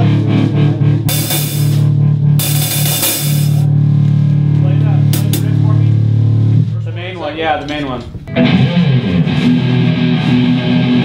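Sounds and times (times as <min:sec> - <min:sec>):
distorted electric guitar: 0:00.0 - 0:06.7, 0:08.0 - 0:11.0
bass guitar: 0:00.0 - 0:11.0
crash cymbals: 0:01.1 - 0:03.7.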